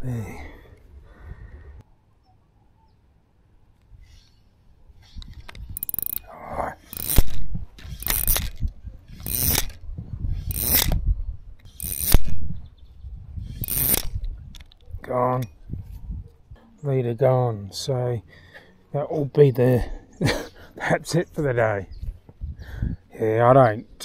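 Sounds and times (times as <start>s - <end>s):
fishing reel clicking: 5.8s - 6.3s, 6.9s - 8.6s, 9.2s - 9.8s, 10.4s - 11.0s, 11.6s - 12.3s, 13.6s - 14.2s.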